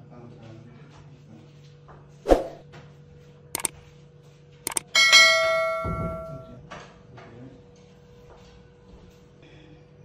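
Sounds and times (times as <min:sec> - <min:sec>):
quick clicks: 0:04.7 - 0:04.9
bright bell ding: 0:04.7 - 0:06.6.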